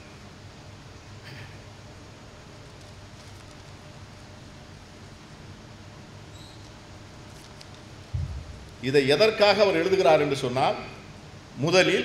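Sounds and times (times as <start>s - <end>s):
paper sheets handled: 2.6s - 4.3s, 7.2s - 7.9s
faint high squeak: 6.3s - 6.8s
sound system hum: 7.9s - 12.0s.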